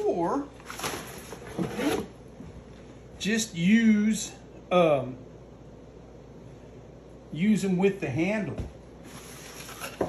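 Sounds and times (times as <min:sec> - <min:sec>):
cardboard box and paper rustling: 0:00.6 - 0:02.0.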